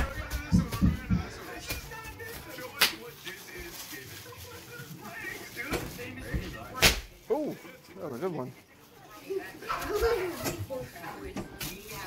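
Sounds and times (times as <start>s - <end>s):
bubble wrap popping: 0.0s - 7.4s.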